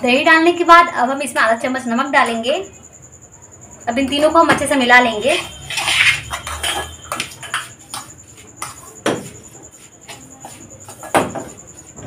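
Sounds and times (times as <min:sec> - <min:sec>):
spoon scraping steel bowl: 0:05.1 - 0:08.2.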